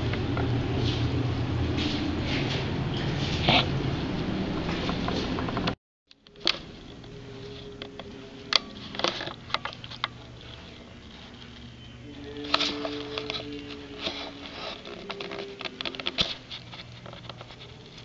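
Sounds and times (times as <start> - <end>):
steady low hum: 0.0 - 18.0.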